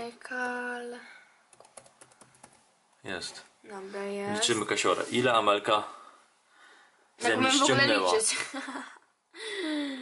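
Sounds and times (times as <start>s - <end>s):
faint keyboard typing: 1.5s - 2.7s.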